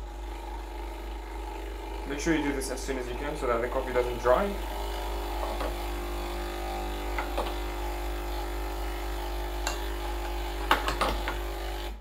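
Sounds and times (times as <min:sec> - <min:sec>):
espresso machine pump humming: 0:00.0 - 0:12.0.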